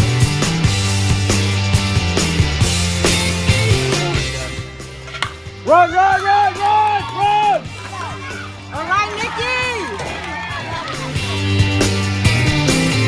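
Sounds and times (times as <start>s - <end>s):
background rock music: 0.0s - 13.0s.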